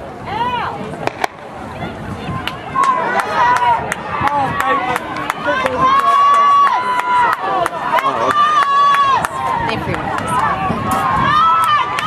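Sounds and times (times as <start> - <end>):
spectators yelling encouragement: 1.7 - 12.0
long high shout: 11.0 - 12.0.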